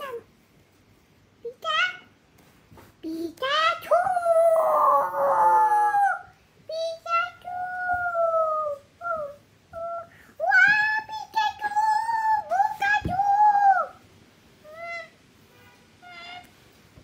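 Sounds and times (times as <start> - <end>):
child singing: 3.0 - 14.0.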